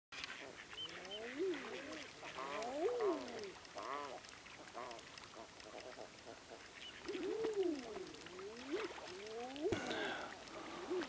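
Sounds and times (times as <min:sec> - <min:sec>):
birds calling: 0:00.2 - 0:11.0
short high bird calls: 0:00.7 - 0:04.1.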